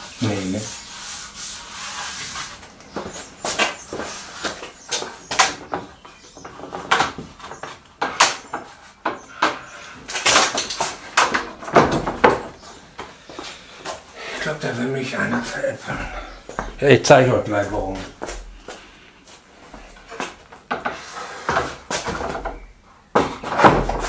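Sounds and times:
wooden boards knocking and scraping: 2.2s - 14.0s, 19.7s - 24.0s.

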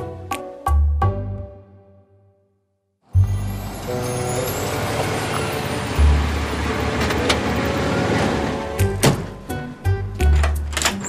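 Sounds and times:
suv engine and tyres running: 3.2s - 10.4s.

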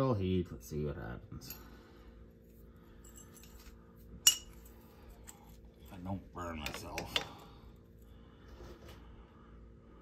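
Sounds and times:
steel washers clinking: 3.0s - 7.4s.

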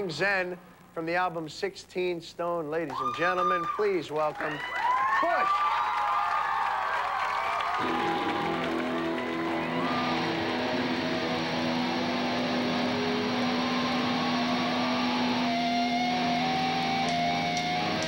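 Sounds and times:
electric guitars playing rock: 7.8s - 18.0s.

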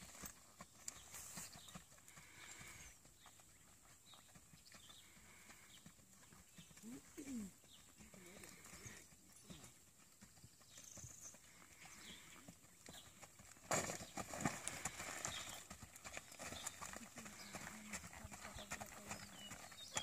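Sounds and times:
soft hoofbeats on grass and dirt: 0.0s - 20.0s.

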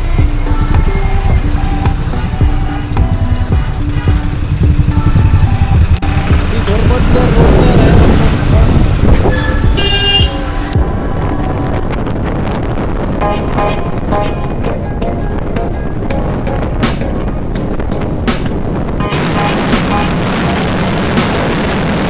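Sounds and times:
heavy road traffic rumble: 0.0s - 22.0s
vehicle horns honking: 9.2s - 10.6s, 13.2s - 14.7s
loud high horn blast: 9.6s - 10.6s, 19.0s - 21.8s.

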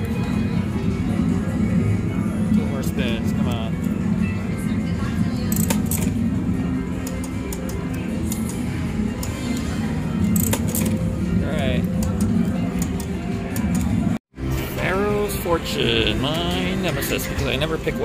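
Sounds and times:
slot machine music: 0.0s - 18.0s
slot reels clicking: 5.5s - 6.2s, 10.3s - 11.1s.

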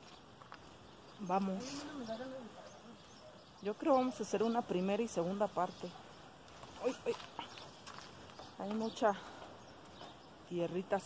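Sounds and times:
footsteps on sandy dirt path: 0.0s - 3.2s, 5.8s - 10.4s.

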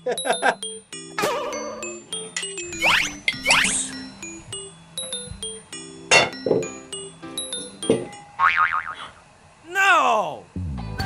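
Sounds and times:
playful background music: 0.0s - 8.4s
wobbling pitched effect: 2.7s - 4.0s.

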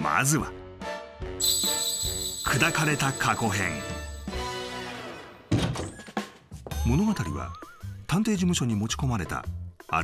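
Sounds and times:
chiming music cue: 1.4s - 4.7s.

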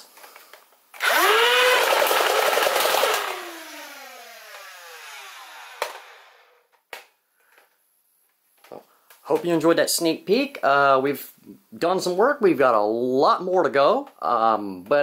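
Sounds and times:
toy blaster rapid firing: 1.0s - 6.5s
toy blaster flywheel whine: 1.0s - 6.7s.

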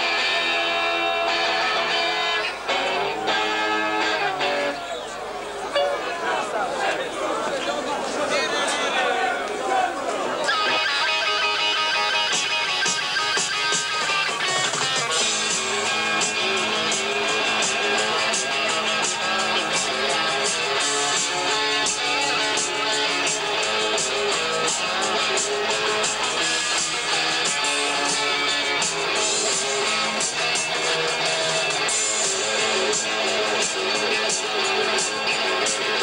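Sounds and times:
electric guitar: 0.0s - 5.0s, 10.4s - 36.0s
drums: 0.0s - 5.7s, 10.0s - 36.0s
bass guitar: 10.4s - 36.0s.

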